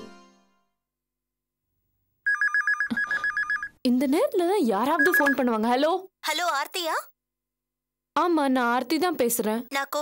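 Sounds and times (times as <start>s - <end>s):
telephone ringing: 2.2s - 3.8s, 4.8s - 5.6s.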